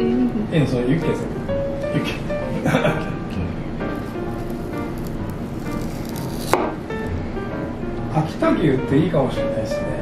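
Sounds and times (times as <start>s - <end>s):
background music: 0.0s - 10.0s
knife tapping cutting board: 6.5s - 6.8s.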